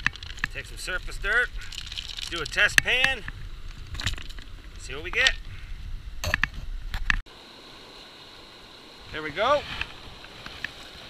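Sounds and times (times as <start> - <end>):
gravel clicking in plastic pan: 0.0 - 3.3
wind rumble on microphone: 0.0 - 7.2
running river water: 7.3 - 11.0.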